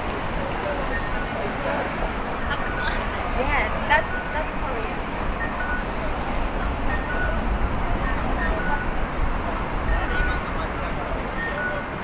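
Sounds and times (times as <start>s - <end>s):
traffic rumble: 0.0s - 12.0s.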